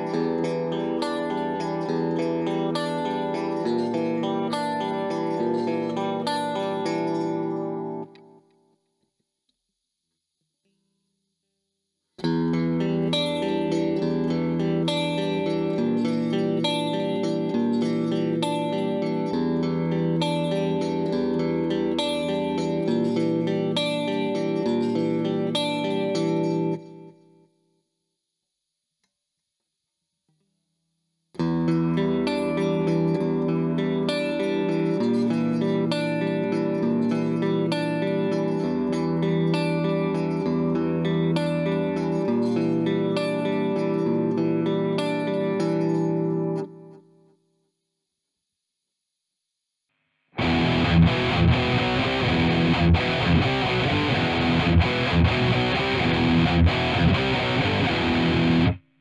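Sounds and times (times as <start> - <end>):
electric guitar playing: 0.0 - 8.2, 12.2 - 26.8, 31.4 - 46.7, 50.4 - 58.8.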